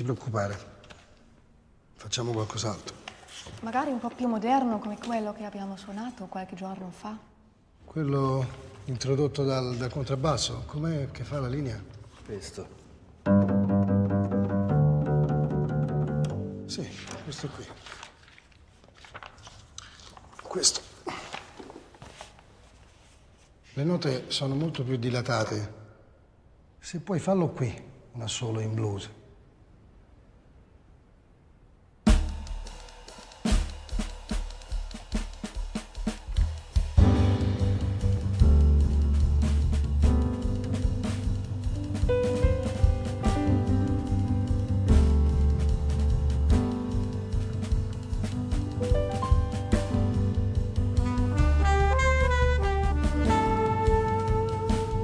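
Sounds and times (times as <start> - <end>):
double bass plucked jazz line: 13.3 - 16.7, 37.4 - 55.0
drum strokes: 32.1 - 55.0
heavy drum hit: 32.1 - 55.0.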